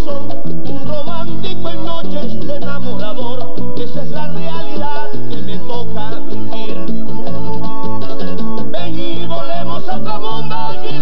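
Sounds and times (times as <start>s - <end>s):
man singing: 0.0s - 7.4s, 8.6s - 11.0s
button accordion: 0.0s - 11.0s
pulsing bass line: 0.0s - 11.0s.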